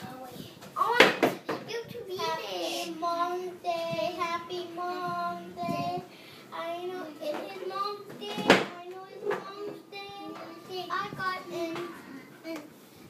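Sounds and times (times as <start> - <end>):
young boy singing: 0.0 - 12.7.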